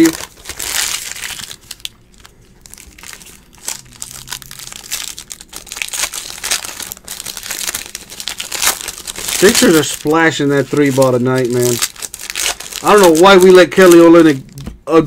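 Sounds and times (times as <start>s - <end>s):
foil wrapper crinkling: 0.0s - 14.4s.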